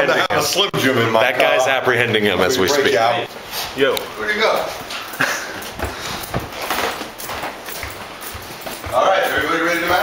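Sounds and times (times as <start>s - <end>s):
footsteps on hard floor: 4.6s - 10.0s.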